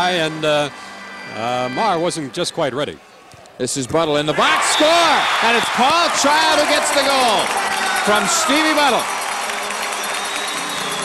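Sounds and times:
crowd cheering and applauding: 4.4 - 11.0.

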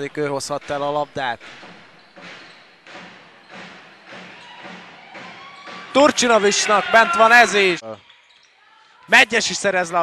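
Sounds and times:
large hall background noise: 0.0 - 10.0
basketball bouncing thuds: 0.5 - 6.3.

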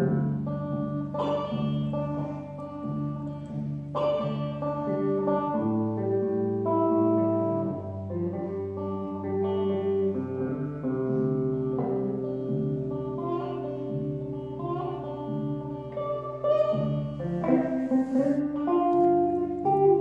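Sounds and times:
solo electric guitar: 0.0 - 20.0.

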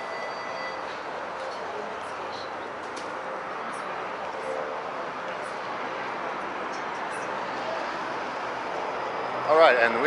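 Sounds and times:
streetcar rolling on track: 0.0 - 10.0.

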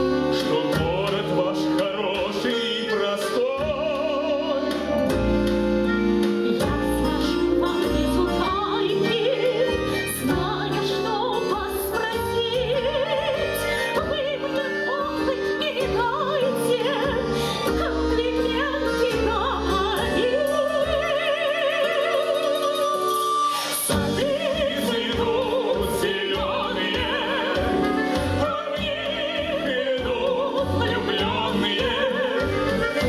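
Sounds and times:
instrumental accompaniment: 0.0 - 33.0
woman singing operatically: 6.2 - 33.0.

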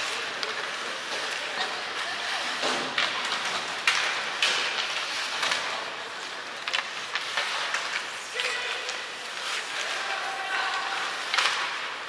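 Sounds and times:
hockey sticks clacking on puck: 0.0 - 12.0
skate blades scraping ice: 0.0 - 12.0.

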